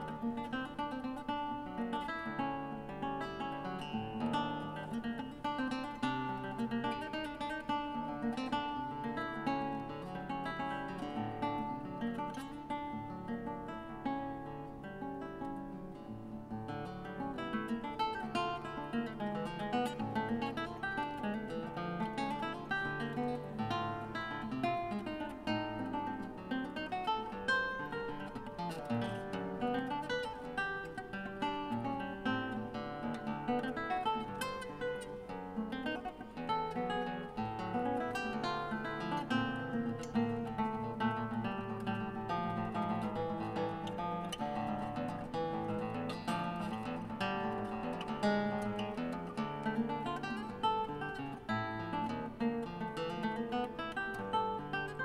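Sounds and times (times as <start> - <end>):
classical guitar fingerstyle: 0.0 - 55.0.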